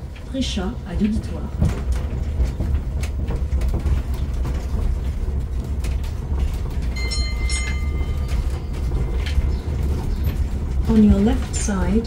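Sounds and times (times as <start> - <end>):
rattling clicks of carriages: 0.0 - 12.0
road train rumbling over cobblestones: 0.0 - 12.0
short high ringing tone: 7.0 - 8.7.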